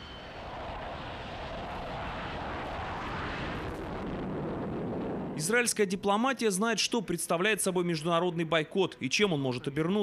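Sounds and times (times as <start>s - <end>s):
jet engine rushing: 0.0s - 5.4s.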